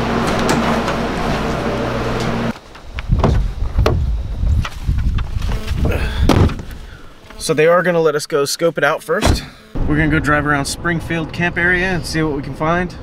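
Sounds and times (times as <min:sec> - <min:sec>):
steady low hum: 0:00.0 - 0:13.0
low thumps and knocks: 0:02.9 - 0:06.7.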